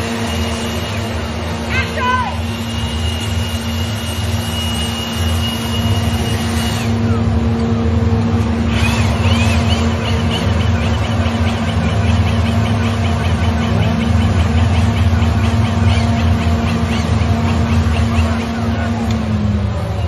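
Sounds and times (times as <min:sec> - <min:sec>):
motorboat engine humming: 0:00.0 - 0:20.0
high whistle-like tone: 0:02.3 - 0:07.2
high chirping calls: 0:08.8 - 0:18.6.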